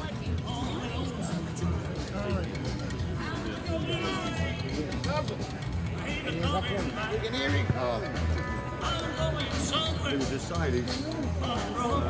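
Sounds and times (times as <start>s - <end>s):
bass notes: 0.4s - 12.0s.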